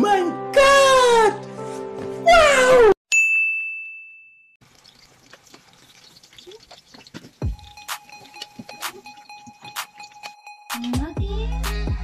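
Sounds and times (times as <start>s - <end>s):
bright ding: 3.1s - 4.6s.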